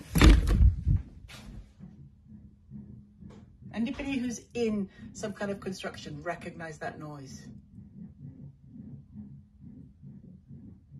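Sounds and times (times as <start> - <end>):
low pulsing hum: 0.0 - 10.9.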